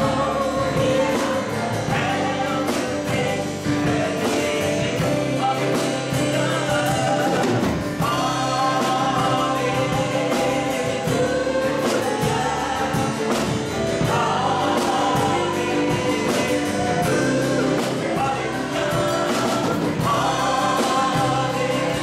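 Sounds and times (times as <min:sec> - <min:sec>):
group singing worship song: 0:00.0 - 0:22.0
strummed acoustic guitar: 0:00.0 - 0:22.0.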